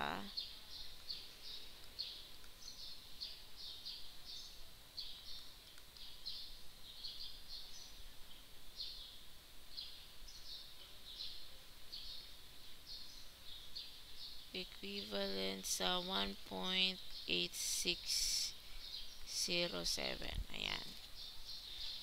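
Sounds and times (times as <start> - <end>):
faint high-pitched chirping: 0.0 - 22.0.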